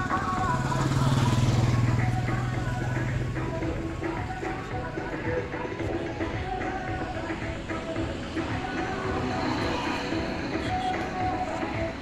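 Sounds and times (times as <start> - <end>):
motorcycle passing by: 0.0 - 4.7
background music: 0.0 - 12.0.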